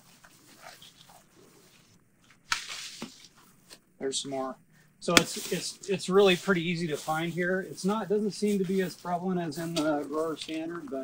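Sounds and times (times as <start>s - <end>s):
leaves and branches rustling: 0.0s - 4.4s, 5.0s - 11.0s.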